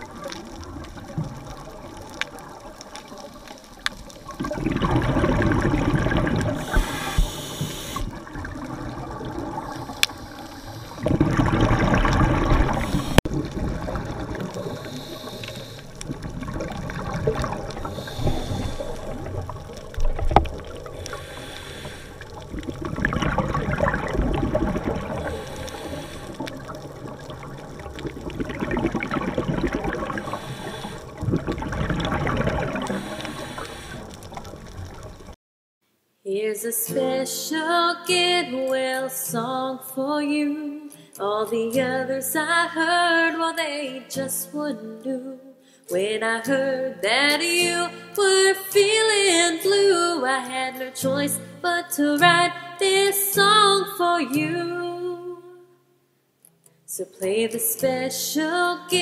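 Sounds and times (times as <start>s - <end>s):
exhaled air bubbling underwater: 0.0s - 35.4s
low underwater rumble: 0.0s - 35.4s.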